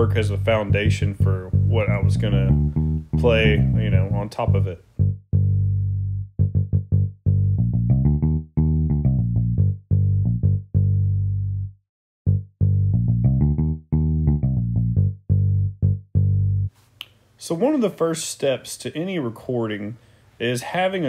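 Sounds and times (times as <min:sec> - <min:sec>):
plucked electric bass notes: 0:00.0 - 0:16.7.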